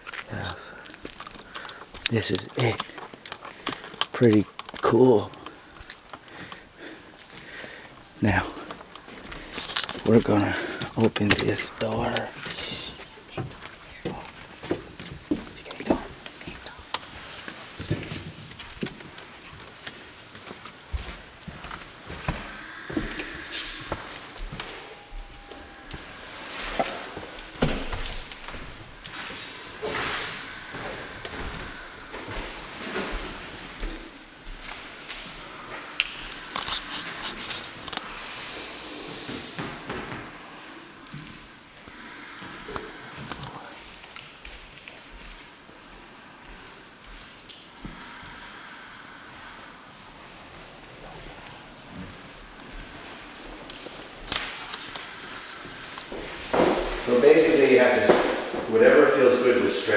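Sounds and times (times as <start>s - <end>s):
rustling: 0.0s - 49.2s
footsteps on wooden floor: 17.2s - 35.4s.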